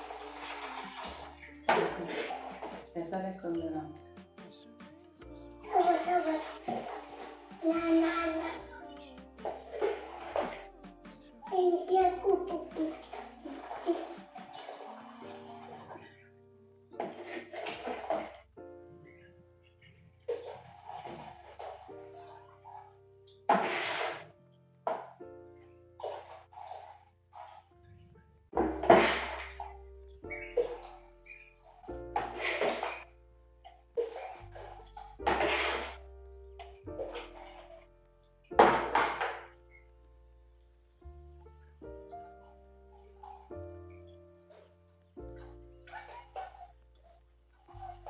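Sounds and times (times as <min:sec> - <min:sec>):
drink splashing through sieve: 0:00.0 - 0:04.8, 0:05.4 - 0:16.0, 0:23.5 - 0:24.2, 0:28.6 - 0:29.7, 0:31.8 - 0:33.1, 0:34.0 - 0:36.0
background keyboard music: 0:00.0 - 0:48.0.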